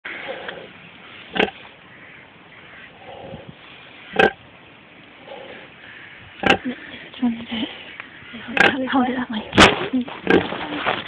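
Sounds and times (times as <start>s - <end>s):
pig grunting: 6.4s - 7.0s, 8.4s - 10.6s.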